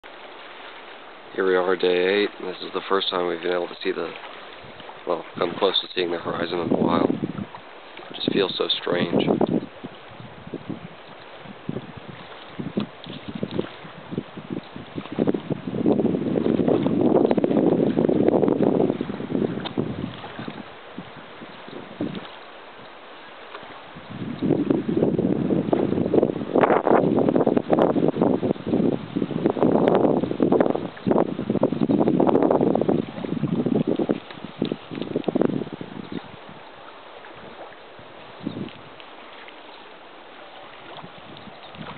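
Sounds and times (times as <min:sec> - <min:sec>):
wind buffeting microphone: 0:01.4 - 0:22.9, 0:23.5 - 0:39.5, 0:40.6 - 0:41.9.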